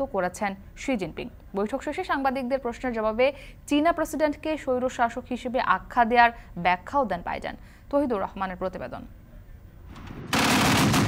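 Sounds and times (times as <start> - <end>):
machine gun burst: 10.1 - 11.0.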